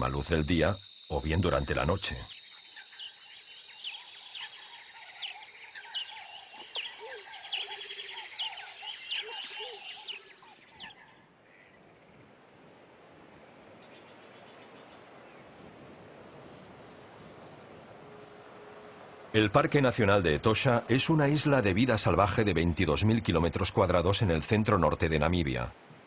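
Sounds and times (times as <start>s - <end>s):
high insect trill: 0.0s - 10.5s
birds chirping and calling: 0.0s - 12.2s.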